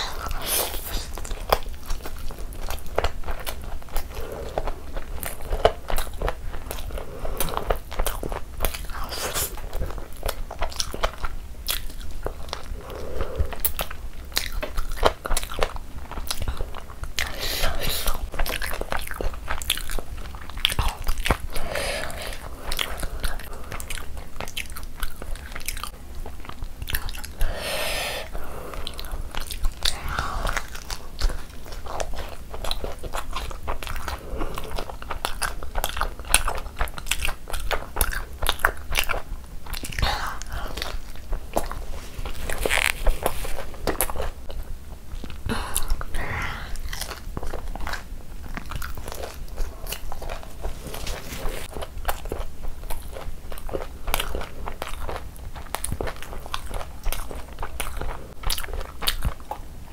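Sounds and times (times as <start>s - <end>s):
chewing and biting food: 0.0s - 59.9s.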